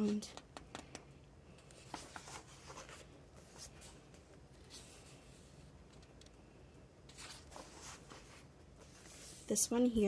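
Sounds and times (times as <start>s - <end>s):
paper page rustling: 1.7s - 5.5s, 7.1s - 9.6s.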